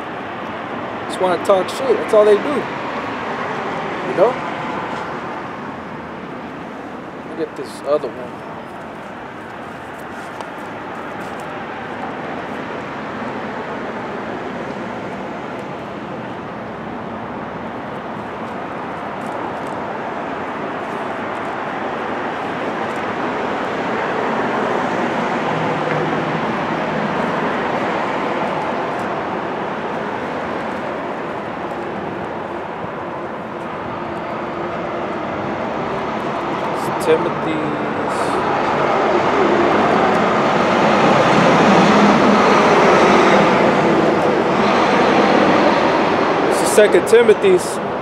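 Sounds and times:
street traffic passing: 0.0 - 48.0.

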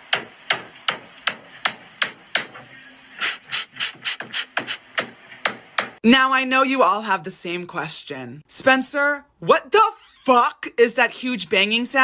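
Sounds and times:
hammer banging on wall: 0.0 - 2.6, 4.2 - 6.0.

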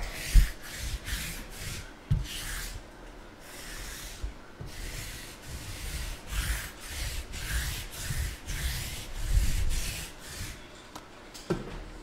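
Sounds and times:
lint roller rubbing on table: 0.0 - 2.8, 3.4 - 10.7.

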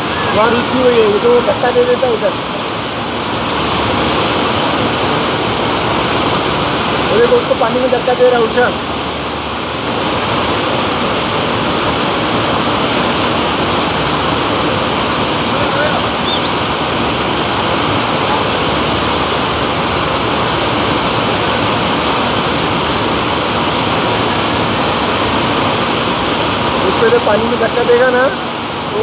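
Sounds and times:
water rushing: 0.0 - 29.0.

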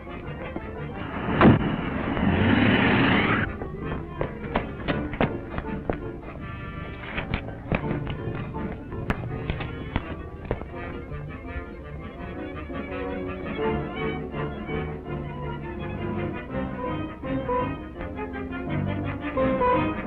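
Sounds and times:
film score music: 0.0 - 20.0
loud rush of noise: 1.0 - 3.7
hard thud: 1.3 - 2.2
sharp taps and clicks: 3.4 - 11.8.

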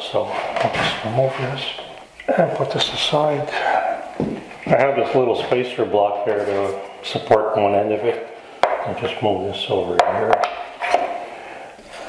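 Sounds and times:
wooden block knocking on bench: 8.6 - 8.8.

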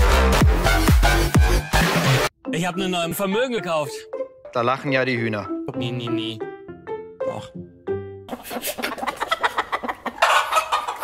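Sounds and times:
chickens clucking: 8.3 - 11.0.

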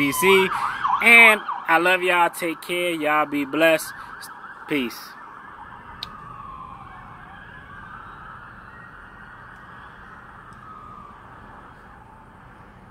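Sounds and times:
emergency siren wailing: 0.0 - 12.9.

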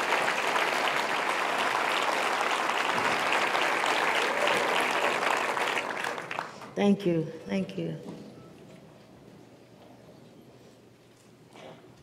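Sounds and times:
large audience applauding: 0.0 - 6.8.

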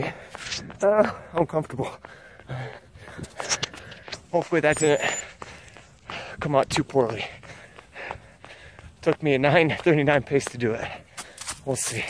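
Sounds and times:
runner breathing hard: 0.0 - 12.0.

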